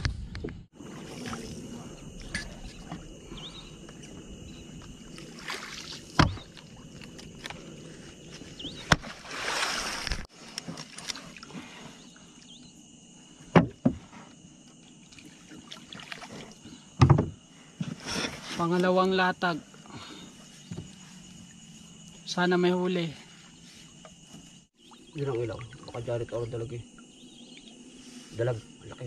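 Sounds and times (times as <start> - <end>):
water swishing around boat: 0.7 - 29.0
knock: 17.0 - 17.3.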